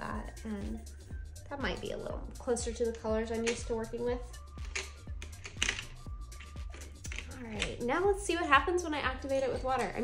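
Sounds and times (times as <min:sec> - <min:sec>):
wooden pencils clicking: 0:02.9 - 0:07.9.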